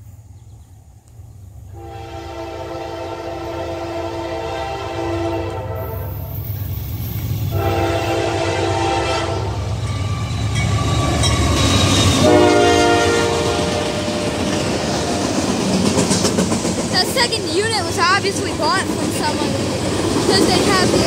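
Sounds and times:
diesel locomotive engine rumble: 0.0s - 21.0s
locomotive air horn blasts: 1.8s - 6.3s, 7.5s - 9.6s, 12.2s - 14.4s
train wheels clattering on rails: 9.6s - 21.0s.

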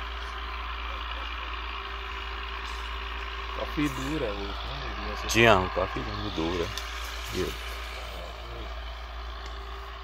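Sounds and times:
tractor engine running: 0.0s - 10.0s
man talking: 3.6s - 8.8s.

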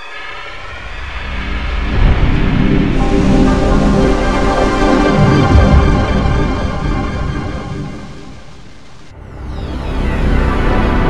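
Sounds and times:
loud low rumble: 1.3s - 11.0s
distorted synthesized startup tones: 2.9s - 8.6s.

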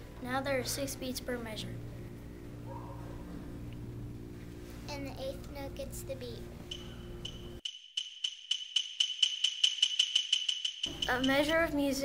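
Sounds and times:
held ringing tone: 6.7s - 11.7s
jingling percussion shaken: 7.7s - 12.0s.

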